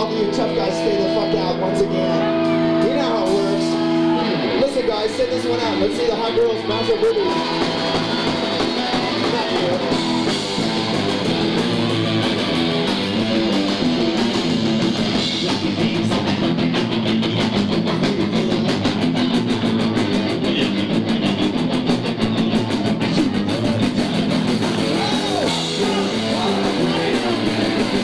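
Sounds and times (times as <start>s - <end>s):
bass guitar: 0.0s - 28.0s
distorted electric guitar: 0.0s - 28.0s
fast drum beat: 4.6s - 28.0s.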